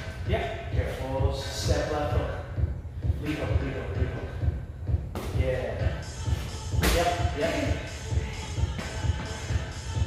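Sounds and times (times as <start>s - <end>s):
music with beat and vocals: 0.0s - 10.0s
kick thudding on punching bag: 6.8s - 7.2s.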